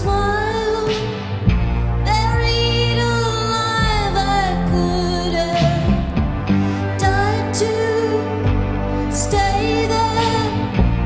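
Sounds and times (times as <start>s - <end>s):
live band with strings: 0.0s - 11.0s.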